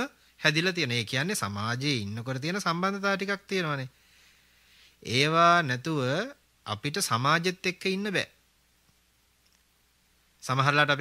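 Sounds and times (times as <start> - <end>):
man preaching: 0.0 - 3.9, 5.0 - 8.4, 10.4 - 11.0
faint click: 8.8 - 9.7.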